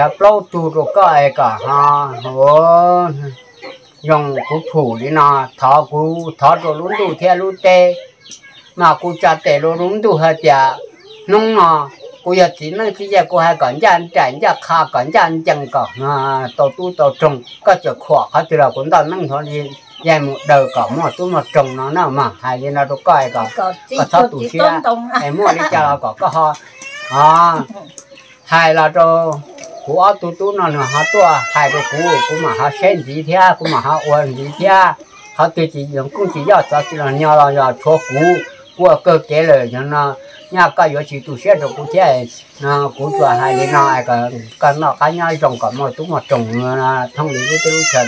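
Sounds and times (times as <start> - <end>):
man speaking: 0.0 - 3.4, 4.0 - 8.1, 8.8 - 48.0
elderly man talking: 0.0 - 48.0.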